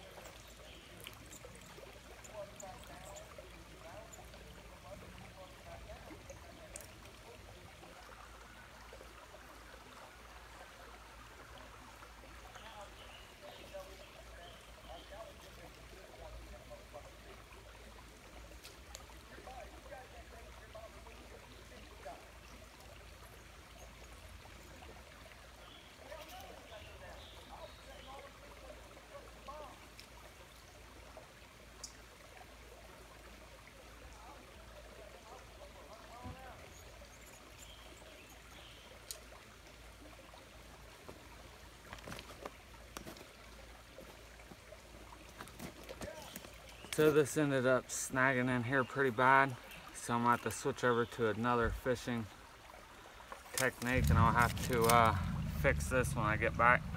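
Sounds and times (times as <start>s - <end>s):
water trickling over rocks: 0.0s - 56.9s.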